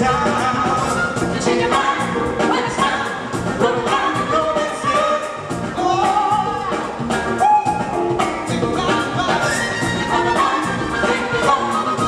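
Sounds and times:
funk and soul band playing: 0:00.0 - 0:12.0.

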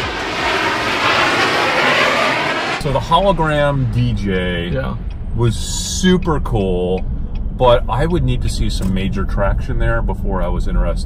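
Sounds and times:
jet airplane flyby rush: 0:00.0 - 0:03.9
man speaking: 0:02.8 - 0:07.0, 0:07.6 - 0:11.0.

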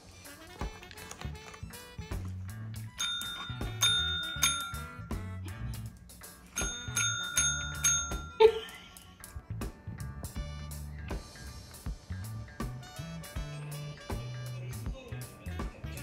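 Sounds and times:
background music: 0:00.0 - 0:16.0
service bell ringing: 0:02.9 - 0:05.4, 0:06.5 - 0:09.0.

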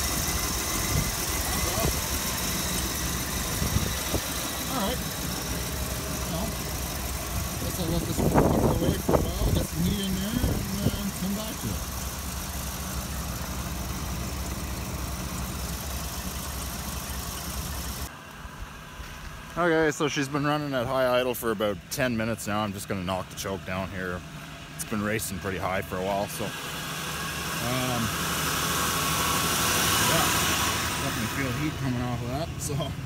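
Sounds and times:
car engine high idle: 0:00.0 - 0:33.0.

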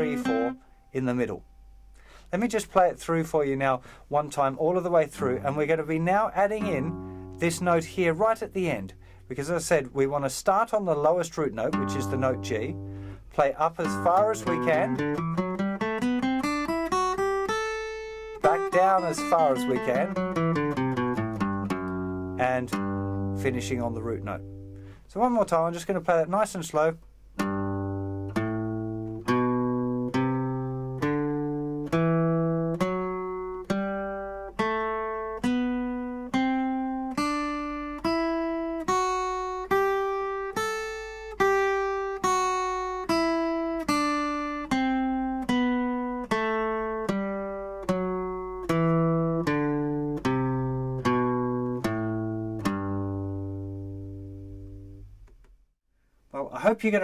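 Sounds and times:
acoustic guitar picking single notes: 0:00.0 - 0:02.7, 0:03.4 - 0:55.5.

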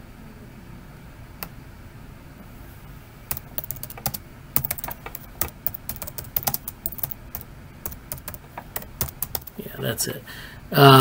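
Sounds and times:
computer keyboard typing: 0:03.3 - 0:09.6.

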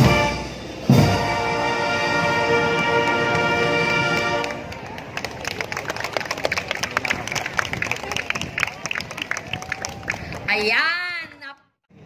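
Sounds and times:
crowd clapping and cheering: 0:02.7 - 0:11.5.

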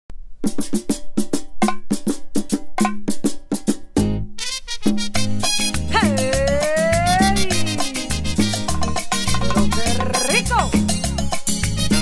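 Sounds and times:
salsa percussion drum strokes: 0:00.2 - 0:12.0.

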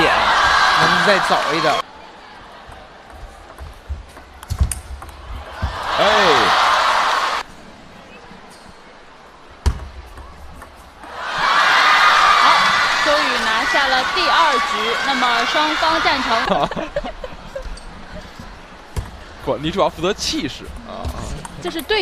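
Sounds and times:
people shouting: 0:00.0 - 0:01.8, 0:05.4 - 0:07.4, 0:11.0 - 0:16.5
crowd cheering: 0:00.0 - 0:07.5, 0:11.0 - 0:17.6
crowd voices: 0:00.0 - 0:22.0.

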